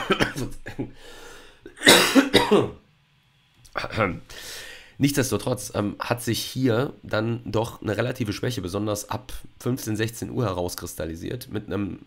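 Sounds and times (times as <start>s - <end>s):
man coughing: 0.0s - 1.0s, 1.7s - 2.8s.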